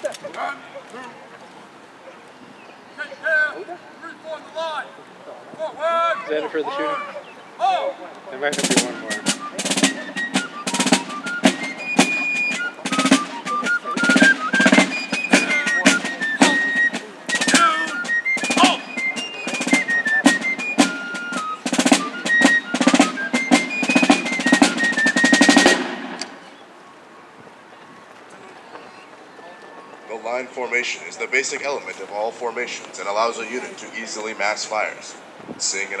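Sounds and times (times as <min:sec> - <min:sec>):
shrill fife melody: 0:06.1 - 0:26.6
snare drum: 0:08.5 - 0:26.4.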